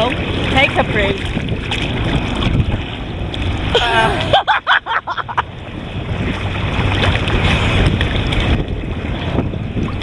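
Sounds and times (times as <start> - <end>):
boat engines humming: 0.0 - 10.0
choppy water washing: 0.0 - 10.0.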